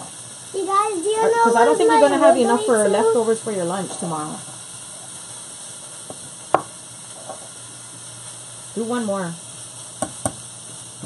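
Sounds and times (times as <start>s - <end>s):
meat sizzling in a pan: 0.0s - 11.0s.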